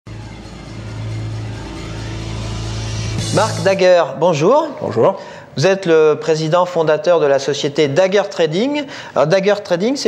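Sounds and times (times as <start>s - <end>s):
low droning ident music: 0.1s - 4.1s.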